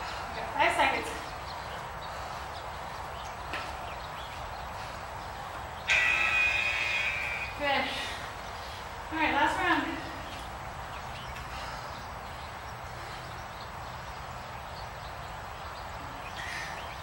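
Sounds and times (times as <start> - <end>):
background hiss: 0.0 - 17.0.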